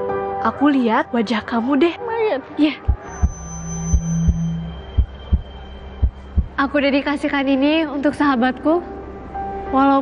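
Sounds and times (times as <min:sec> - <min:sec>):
heartbeat thumps: 0:02.9 - 0:06.6.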